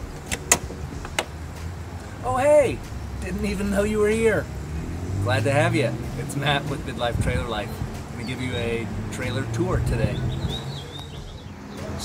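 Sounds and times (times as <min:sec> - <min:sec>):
metal door latch clicking: 0:00.2 - 0:01.3.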